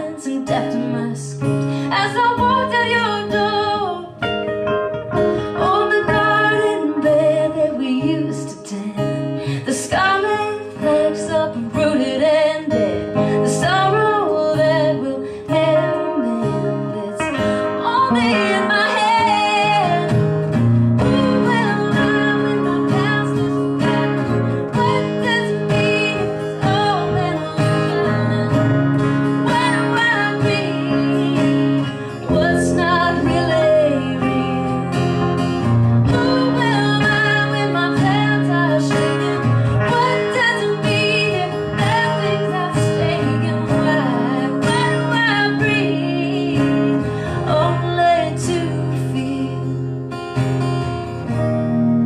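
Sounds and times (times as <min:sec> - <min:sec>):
acoustic guitar strumming: 0:00.0 - 0:52.0
sliding guitar melody: 0:00.0 - 0:52.0.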